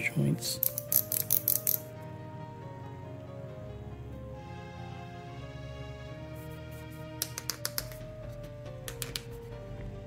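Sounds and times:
action figure joints clicking: 0.6 - 1.8.

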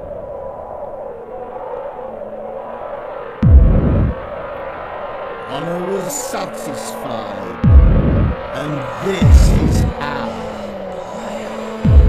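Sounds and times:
electronic droning pad: 0.0 - 12.0.

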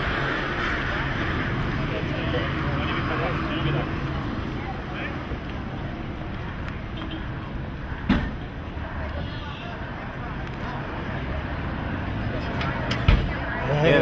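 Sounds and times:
murmur of voices: 0.0 - 14.0
traffic: 0.0 - 14.0.

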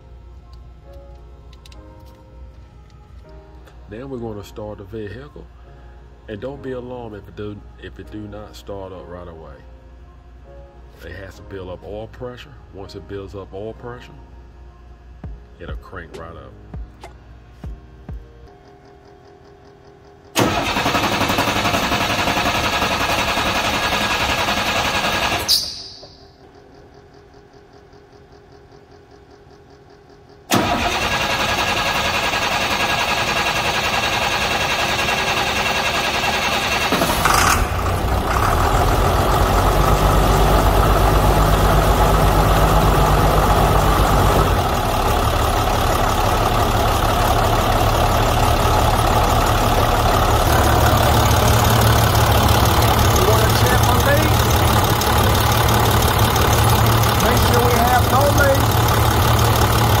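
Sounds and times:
diesel engine cranking: 18.8 - 60.0
diesel engine idling: 19.2 - 60.0.

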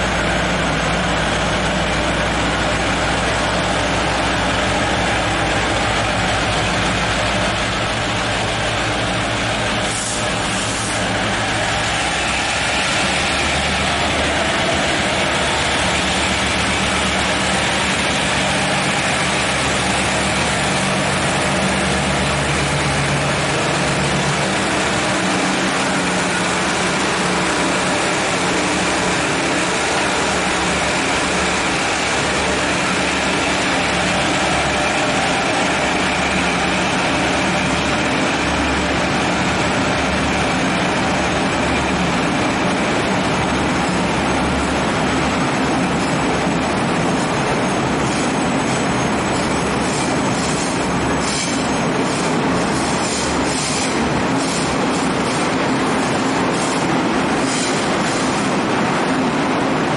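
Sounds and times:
carriages rolling on rails: 0.0 - 59.9
locomotive engine hum: 0.0 - 59.9.

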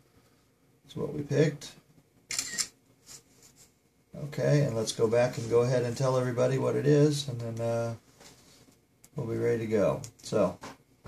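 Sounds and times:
camera shutter sound: 2.3 - 2.8.

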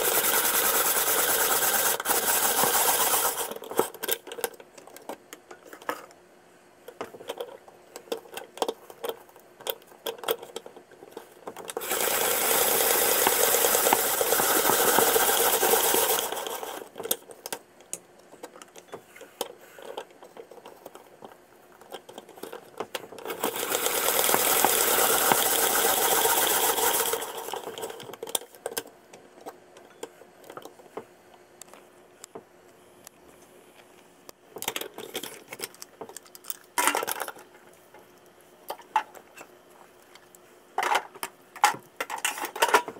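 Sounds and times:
spiralizer crunching sweet potato: 11.7 - 17.0, 22.3 - 28.5.

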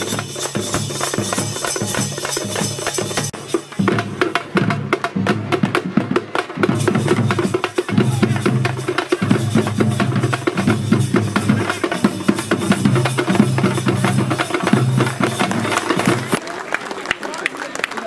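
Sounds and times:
frame and barrel drums playing: 0.0 - 16.4.

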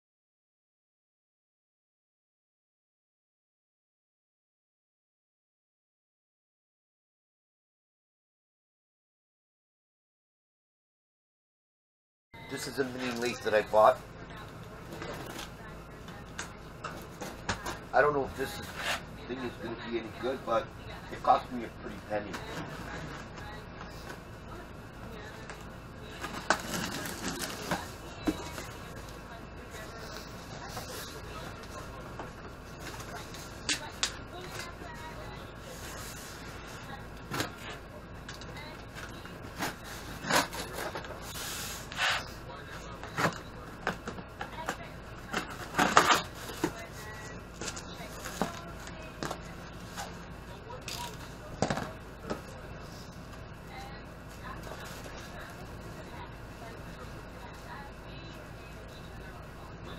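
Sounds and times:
steady background hum: 12.4 - 59.9
packing rustles and scrapes: 26.2 - 28.9.

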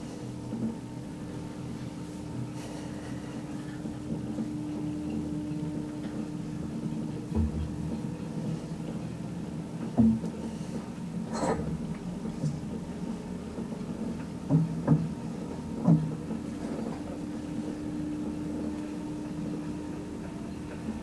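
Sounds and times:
lift motor hum: 0.0 - 21.0
low thump: 7.4 - 7.8.

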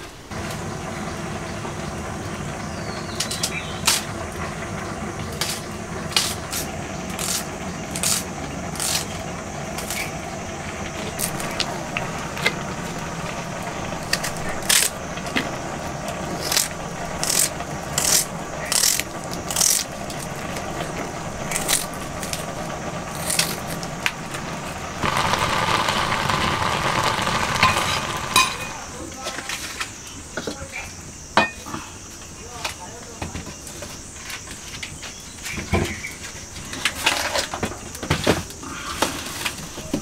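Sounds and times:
low hum: 0.3 - 29.1.

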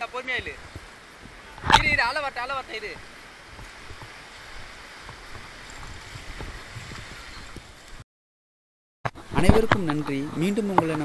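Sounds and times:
surf washing up a beach: 0.0 - 8.0
wind rumble on microphone: 0.4 - 8.0.

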